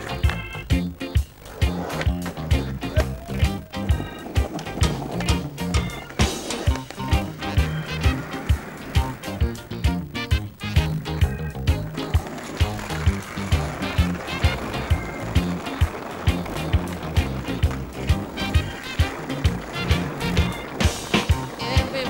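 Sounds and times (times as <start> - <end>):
music with drum beat: 0.0 - 22.0
skateboard wheels rolling on pavement: 0.0 - 22.0.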